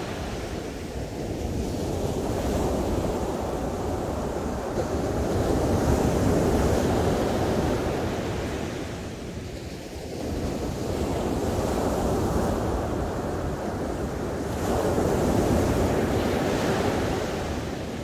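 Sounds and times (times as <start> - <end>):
ocean surf breaking on beach: 0.0 - 18.0.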